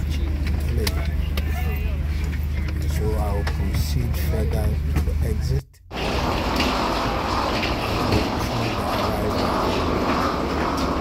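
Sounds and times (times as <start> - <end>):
murmur of passengers: 0.0 - 5.4
wheeled suitcases rolling: 5.9 - 11.0.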